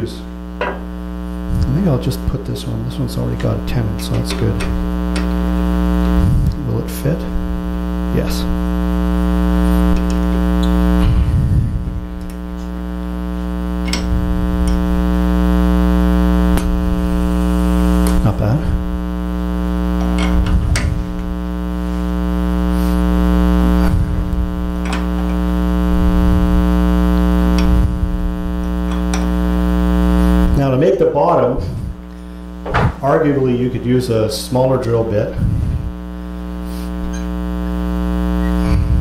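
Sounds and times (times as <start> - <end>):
electrical mains hum: 0.0 - 39.0.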